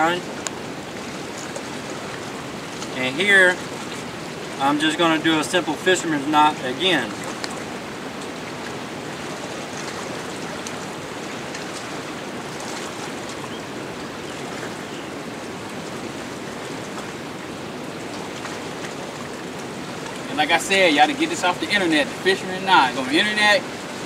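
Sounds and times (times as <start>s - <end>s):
river water rushing: 0.0s - 24.0s.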